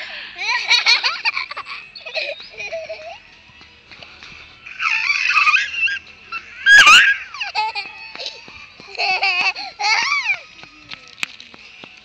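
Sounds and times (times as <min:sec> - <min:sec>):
toddler squealing: 0:04.7 - 0:08.1.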